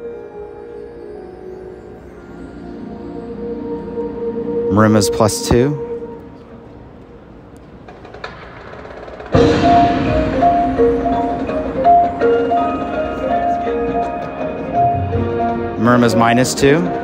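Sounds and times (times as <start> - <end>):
marching band music: 7.9 - 17.0
marimbas playing repeated notes: 9.4 - 17.0.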